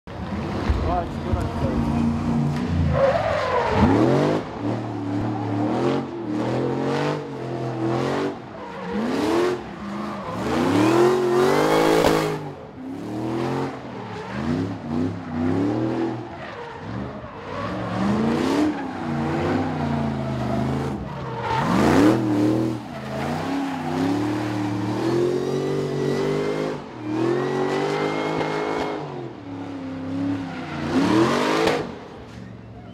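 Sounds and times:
car engine revving: 0.1s - 32.1s.

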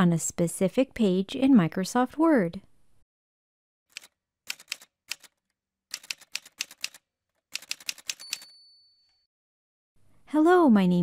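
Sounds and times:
typewriter keystrokes: 3.9s - 8.5s.

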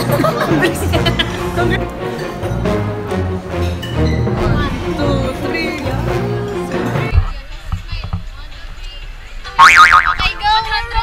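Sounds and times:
cartoon boing sound effect: 9.6s - 10.3s.

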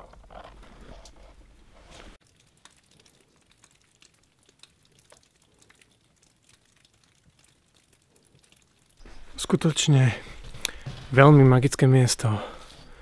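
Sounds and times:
faint ticks and crackles: 0.0s - 13.0s.

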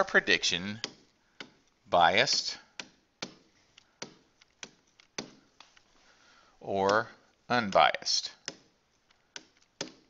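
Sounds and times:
stylus tapping on tablet screen: 0.8s - 5.9s, 6.7s - 10.0s.

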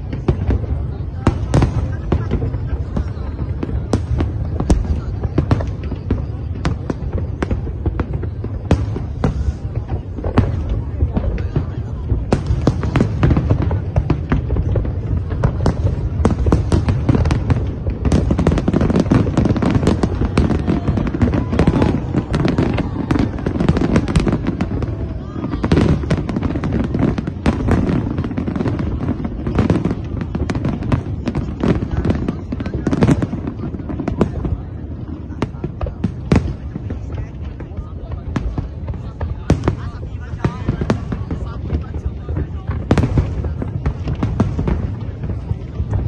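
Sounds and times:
fireworks bangs and crackling: 0.0s - 46.0s.

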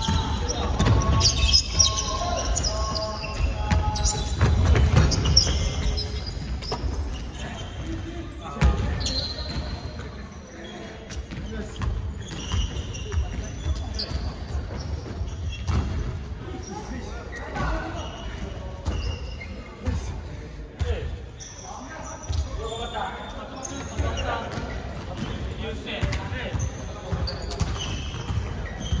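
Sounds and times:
players' voices echoing: 0.0s - 29.0s
sneaker squeaks: 0.0s - 29.0s.

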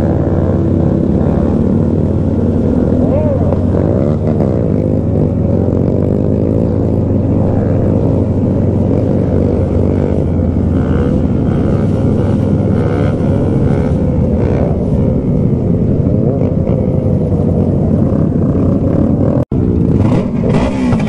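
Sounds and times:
motorcycle engines running: 0.0s - 21.0s.

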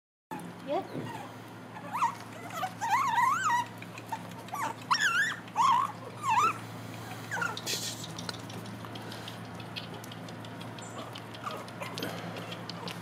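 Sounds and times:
puppy whining: 0.3s - 13.0s.

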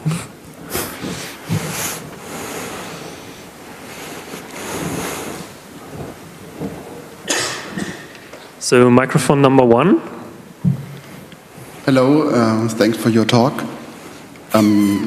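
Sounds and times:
breathy rustling on microphone: 0.0s - 7.2s
hall room noise hiss: 0.0s - 15.0s
puffs on microphone: 0.6s - 6.8s.

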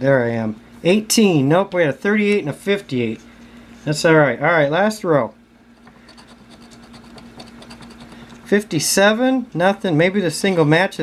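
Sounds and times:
coin scratching a lottery ticket: 5.8s - 8.2s.

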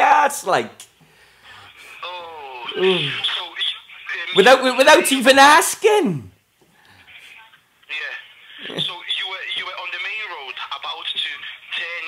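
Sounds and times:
speech over telephone line: 1.7s - 6.0s, 7.1s - 12.0s.

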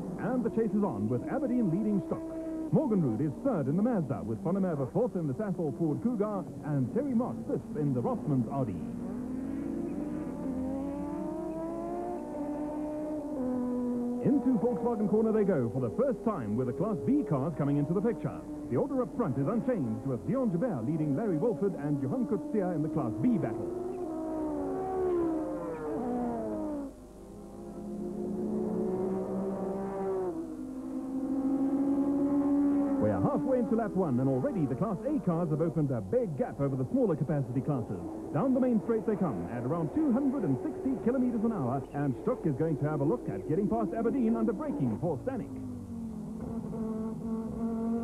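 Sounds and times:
racing car engine accelerating: 0.0s - 48.0s.

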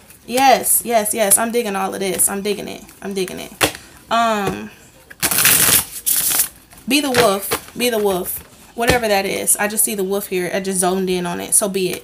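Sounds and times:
cards being shuffled: 5.1s - 6.5s.

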